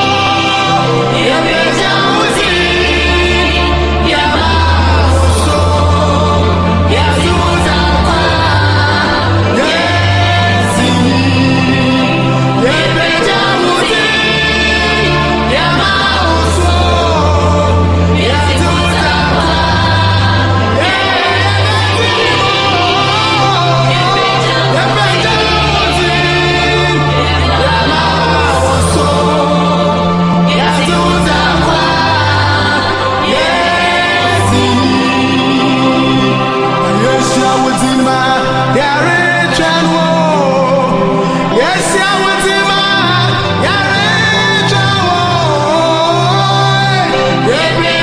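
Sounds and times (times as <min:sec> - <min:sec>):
steady bass accompaniment: 0:00.0 - 0:48.0
voices singing gospel music: 0:00.0 - 0:48.0.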